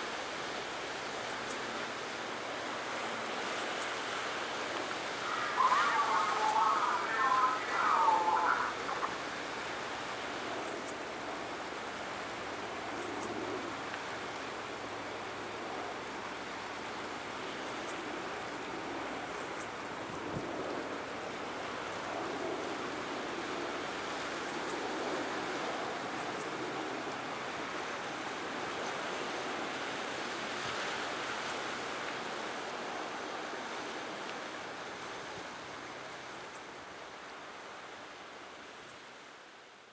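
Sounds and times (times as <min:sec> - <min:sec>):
surf washing on rocky shore: 0:00.0 - 0:38.7.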